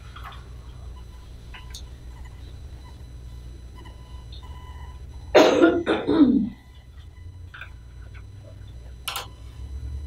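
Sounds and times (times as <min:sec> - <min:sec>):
room hum: 0:00.0 - 0:10.0
person coughing: 0:05.3 - 0:06.6.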